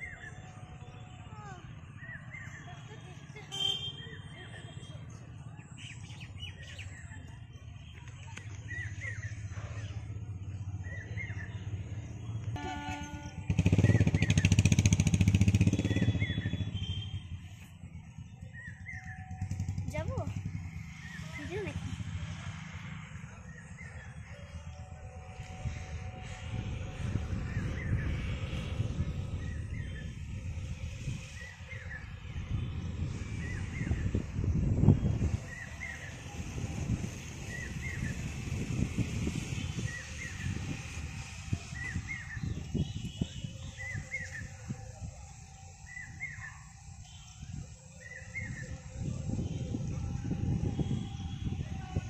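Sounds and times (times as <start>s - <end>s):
wind buffeting microphone: 24.8s - 52.0s.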